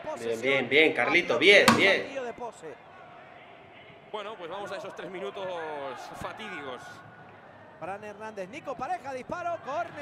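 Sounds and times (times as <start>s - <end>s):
faint crowd noise: 0.0s - 10.0s.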